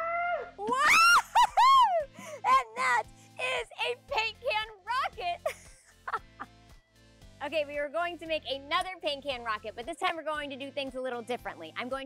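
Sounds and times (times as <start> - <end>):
high-pitched whoops and shrieks: 0.0 - 2.1
background music: 0.0 - 12.0
laughter: 0.7 - 2.1, 5.4 - 6.5.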